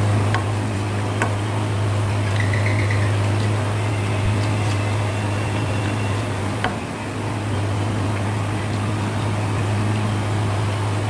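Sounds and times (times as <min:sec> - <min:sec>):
electrical hum with hiss: 0:00.0 - 0:11.0.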